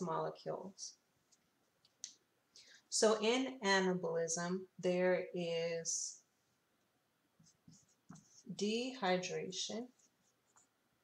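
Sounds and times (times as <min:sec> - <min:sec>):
person speaking: 0:00.0 - 0:01.0, 0:07.7 - 0:10.1.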